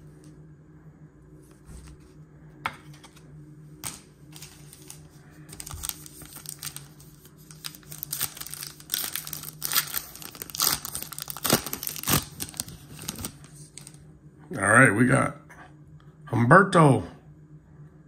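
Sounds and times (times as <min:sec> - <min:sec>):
foil wrapper tearing and crinkling: 0:04.4 - 0:14.0.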